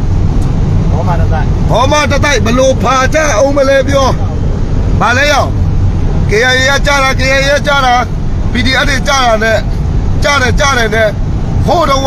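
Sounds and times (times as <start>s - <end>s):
road noise inside cabin: 0.0s - 12.0s
vehicle engine rumble: 0.0s - 12.0s
man talking: 0.9s - 5.6s, 6.2s - 12.0s.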